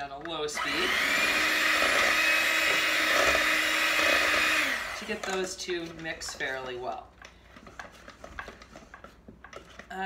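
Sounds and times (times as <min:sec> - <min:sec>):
mixer beaters clicking on metal bowl: 0:00.0 - 0:07.3.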